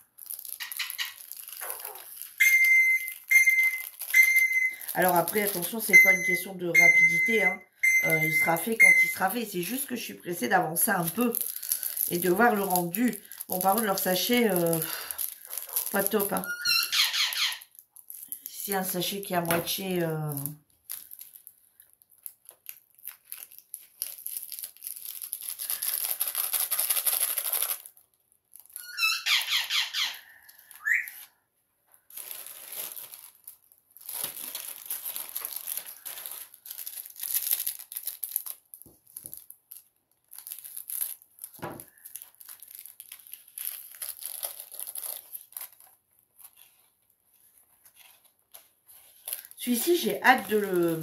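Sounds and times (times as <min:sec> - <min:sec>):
plastic sachets crinkling: 0:00.0 - 0:51.0
plastic squeaks: 0:00.2 - 0:09.2, 0:15.0 - 0:18.3, 0:28.6 - 0:31.3, 0:40.4 - 0:47.0.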